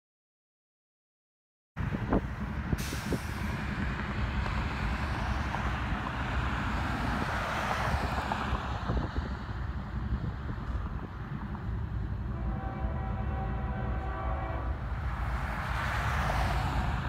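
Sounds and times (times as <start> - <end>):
freight train diesel rumble: 1.8 - 7.3, 8.4 - 17.0.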